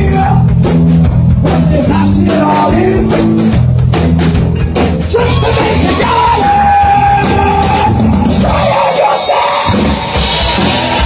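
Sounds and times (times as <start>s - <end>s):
bass guitar: 0.0s - 11.0s
distorted electric guitars: 0.0s - 11.0s
drum kit: 0.0s - 11.0s.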